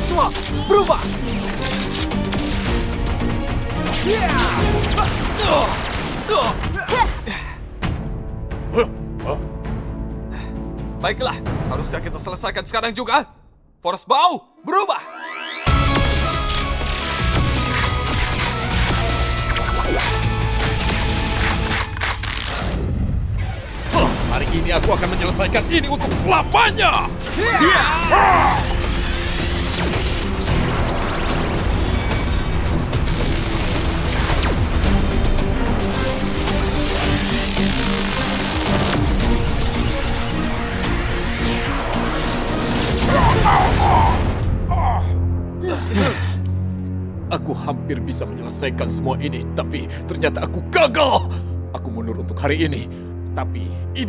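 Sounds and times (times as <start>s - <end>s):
action music: 0.0s - 13.2s, 14.4s - 52.8s.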